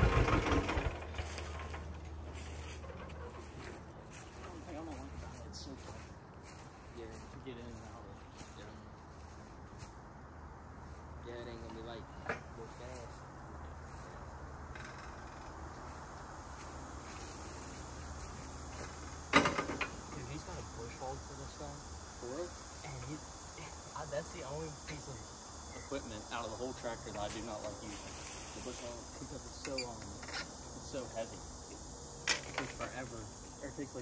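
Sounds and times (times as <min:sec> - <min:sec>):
steady low hum: 0:00.0 - 0:34.0
faint voices: 0:02.4 - 0:09.5, 0:11.2 - 0:14.5, 0:20.1 - 0:25.2, 0:25.9 - 0:30.2.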